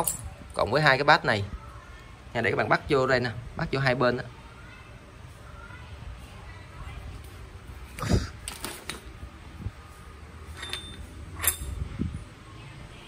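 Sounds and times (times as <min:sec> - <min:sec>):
metal parts clinking on tile floor: 0:00.0 - 0:00.3, 0:10.5 - 0:11.8.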